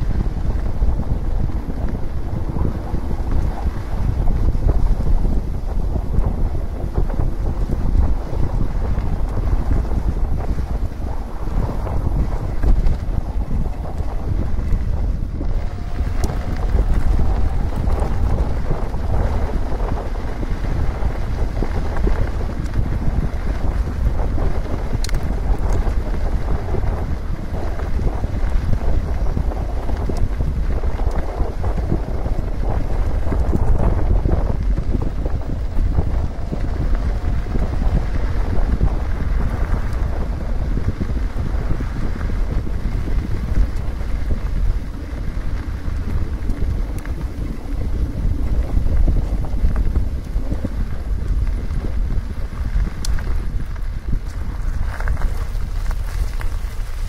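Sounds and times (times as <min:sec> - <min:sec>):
tyres rumbling on gravel: 0:00.0 - 0:57.0
wind buffeting microphone: 0:00.0 - 0:57.0.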